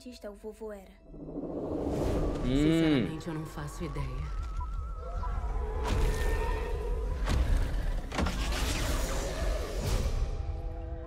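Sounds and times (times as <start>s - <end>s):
whooshing sweeps: 1.0s - 3.6s
deep low rumble: 1.0s - 8.1s.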